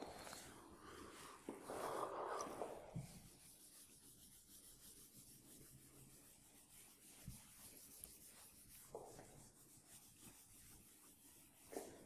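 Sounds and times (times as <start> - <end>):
eraser rubbing on whiteboard: 1.6 - 12.0.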